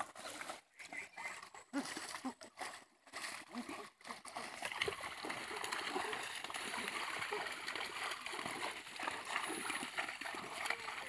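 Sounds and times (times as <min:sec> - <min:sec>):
shallow river water splashing: 0:00.0 - 0:11.0.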